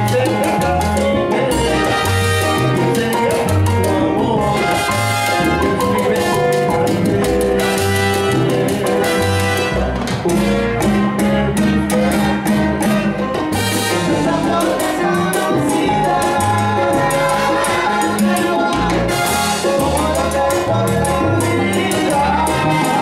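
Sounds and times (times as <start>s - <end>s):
salsa band playing: 0.0s - 23.0s.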